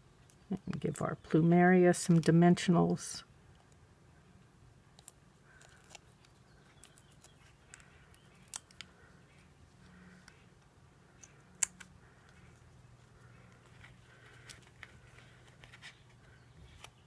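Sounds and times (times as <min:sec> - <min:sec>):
soft paper rustles: 0:11.8 - 0:17.0.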